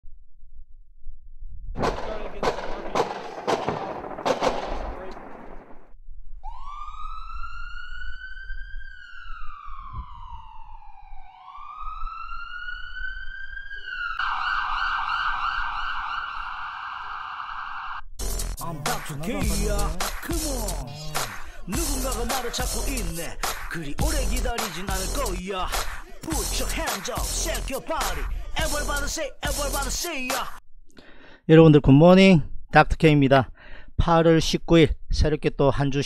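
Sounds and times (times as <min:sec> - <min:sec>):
siren wailing and warbling: 0:06.4 - 0:18.0, 0:18.6 - 0:22.7.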